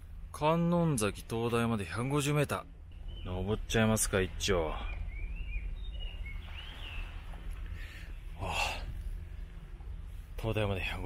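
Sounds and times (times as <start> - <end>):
birds chirping: 0.0 - 11.0
steady low rumble: 0.0 - 11.0.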